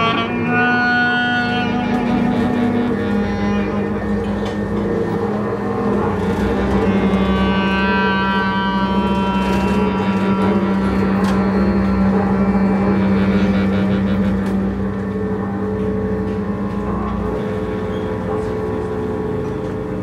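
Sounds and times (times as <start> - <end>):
bowed double bass drone: 0.0 - 20.0.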